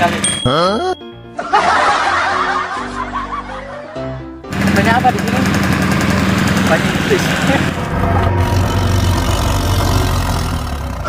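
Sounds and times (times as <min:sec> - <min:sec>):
people snickering and chuckling: 0:00.5 - 0:04.0.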